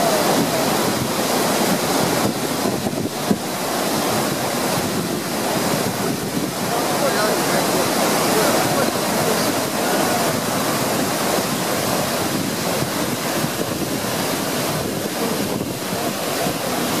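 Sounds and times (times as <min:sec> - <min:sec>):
river pouring over waterfall: 0:00.0 - 0:17.0
wind buffeting microphone: 0:00.0 - 0:17.0.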